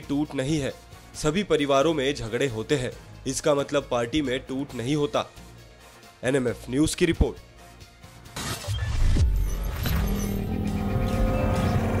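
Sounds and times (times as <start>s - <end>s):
electronic music chords: 9.2s - 12.0s.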